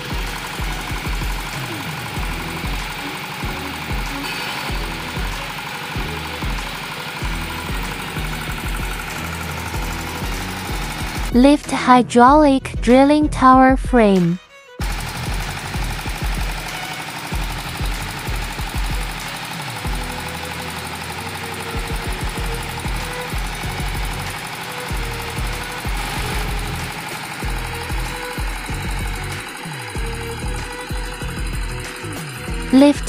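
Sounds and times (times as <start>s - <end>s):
diesel engine knocking: 0.0s - 11.4s, 14.8s - 33.0s.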